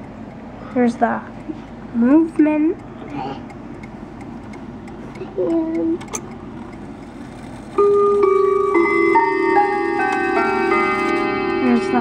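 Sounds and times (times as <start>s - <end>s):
clock ticking: 0.0s - 9.0s.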